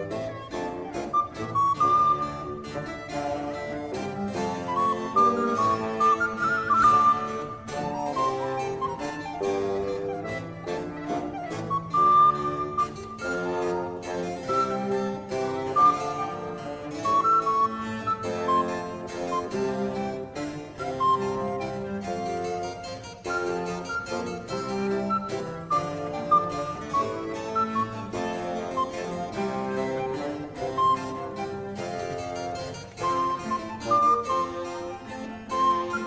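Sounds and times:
baroque violin melody: 0:00.0 - 0:36.0
harpsichord plucking: 0:00.0 - 0:36.0
recorder melody: 0:00.0 - 0:36.0.

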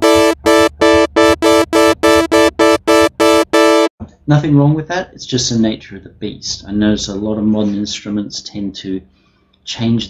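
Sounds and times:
bright buzzy synthesizer note: 0:00.0 - 0:03.9.

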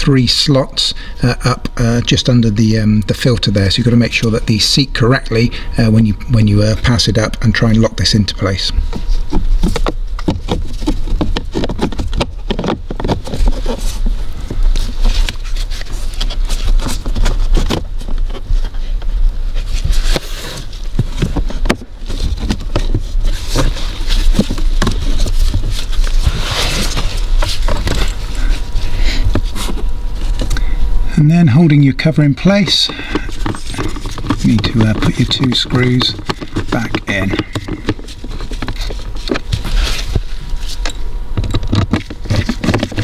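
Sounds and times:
steady low hum: 0:00.0 - 0:43.0
plastic cover clicking and scraping: 0:19.8 - 0:30.6, 0:32.8 - 0:43.0.

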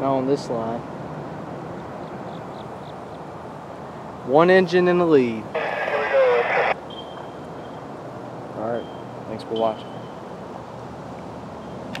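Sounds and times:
low outdoor rumble and hiss: 0:00.0 - 0:06.9.

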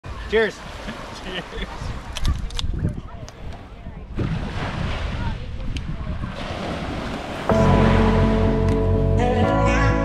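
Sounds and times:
wind: 0:00.0 - 0:10.0
surf: 0:03.1 - 0:10.0
background music with held notes: 0:07.5 - 0:10.0.

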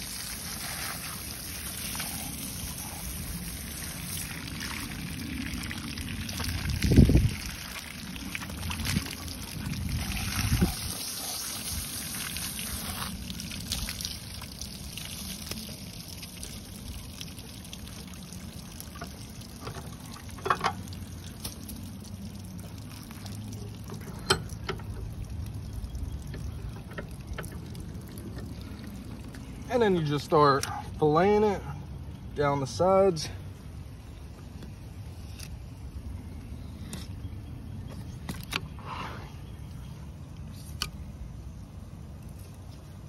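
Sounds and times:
hose water trickling over metal: 0:00.0 - 0:31.7, 0:40.0 - 0:43.0.

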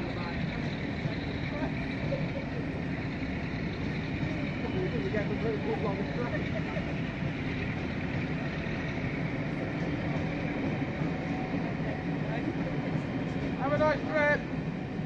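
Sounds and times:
train running noise: 0:00.0 - 0:15.0.

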